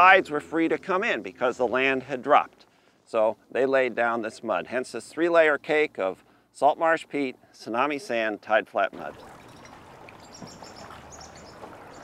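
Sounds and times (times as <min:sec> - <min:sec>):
canoe paddle dipping in water: 0:09.0 - 0:12.0.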